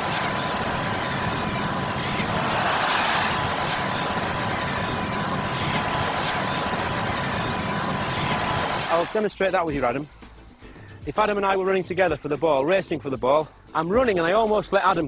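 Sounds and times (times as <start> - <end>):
large stadium crowd noise: 0.0 - 9.3.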